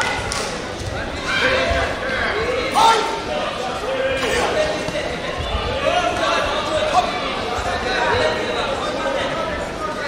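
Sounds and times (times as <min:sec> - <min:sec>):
voices shouting in a hall: 0:00.0 - 0:10.0.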